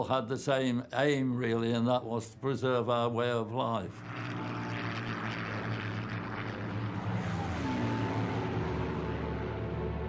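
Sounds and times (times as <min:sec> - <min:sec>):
propeller planes droning past: 0:00.0 - 0:10.0.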